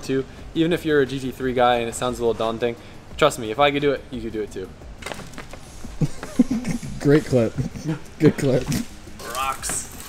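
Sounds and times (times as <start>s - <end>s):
man laughing low: 6.0s - 8.2s.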